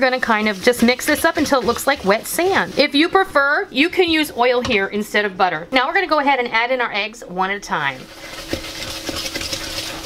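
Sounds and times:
whisk ticking against bowl: 0:00.0 - 0:02.9, 0:08.0 - 0:10.0
whisk stirring wet batter: 0:00.0 - 0:03.4, 0:07.7 - 0:10.0.

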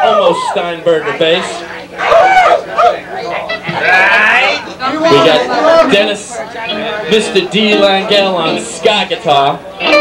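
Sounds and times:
bar chatter: 0:00.0 - 0:10.0
high-pitched whooping cry: 0:02.0 - 0:03.0.

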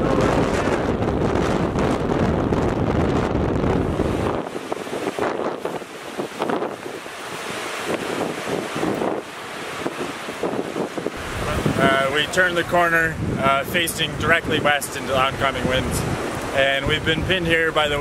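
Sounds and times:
waves breaking at shore: 0:00.0 - 0:18.0
wind buffeting microphone: 0:00.0 - 0:18.0.

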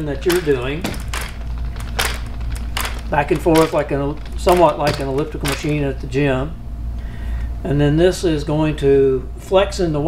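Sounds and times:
pedal drive chain clacking: 0:00.0 - 0:06.0.

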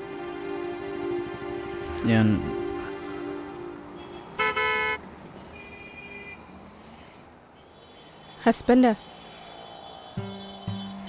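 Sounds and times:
higher horn toot: 0:02.0 - 0:06.4
vehicle horn toot: 0:03.9 - 0:06.4, 0:10.1 - 0:11.0.

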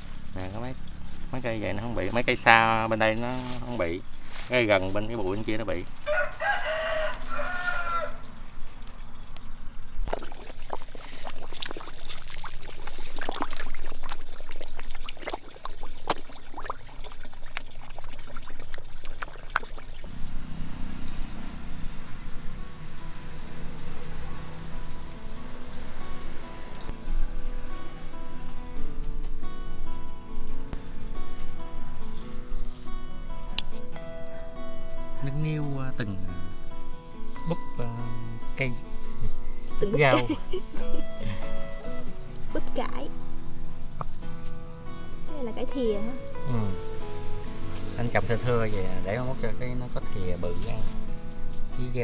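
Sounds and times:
leafy greens rustling in plastic basket: 0:02.8 - 0:08.0, 0:50.1 - 0:52.0
rooster crowing: 0:06.0 - 0:08.3
background music: 0:21.8 - 0:52.0.

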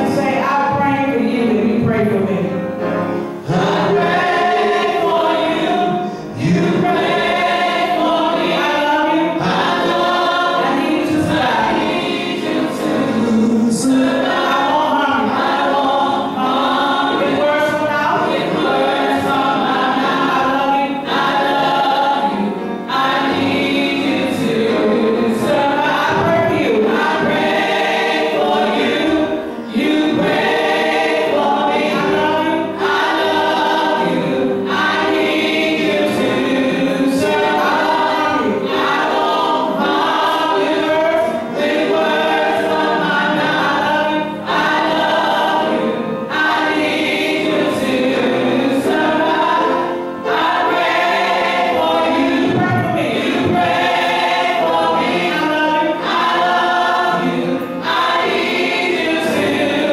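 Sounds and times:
gospel choir singing with music: 0:00.0 - 0:59.9.

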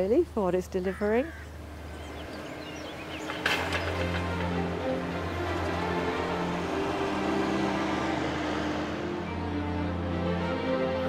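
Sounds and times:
small birds chirping: 0:00.0 - 0:04.5.

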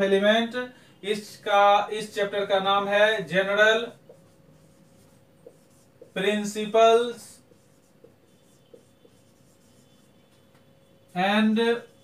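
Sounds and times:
marker writing on a whiteboard: 0:02.3 - 0:12.0
marker tapping on whiteboard: 0:04.0 - 0:06.2, 0:07.5 - 0:09.7.

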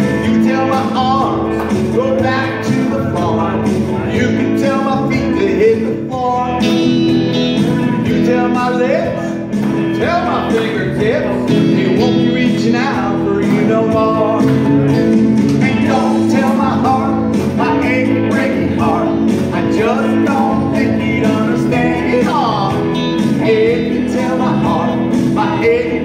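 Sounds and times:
electric guitar: 0:00.0 - 0:26.0
man singing: 0:00.0 - 0:26.0
steady drum beat: 0:00.0 - 0:26.0.

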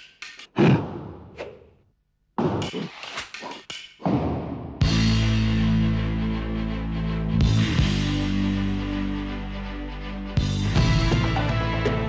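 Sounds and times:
rock band playing loud chord: 0:10.4 - 0:12.0.

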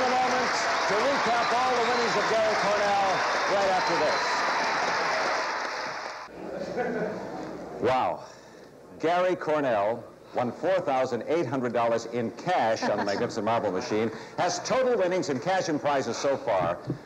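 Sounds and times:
excited shouts and cheers: 0:00.0 - 0:05.7
audience applauding: 0:00.0 - 0:06.3.

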